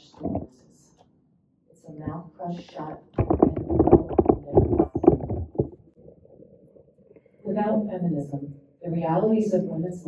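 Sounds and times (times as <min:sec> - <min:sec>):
woman speaking: 0:00.0 - 0:01.0, 0:01.8 - 0:05.4, 0:07.4 - 0:10.0.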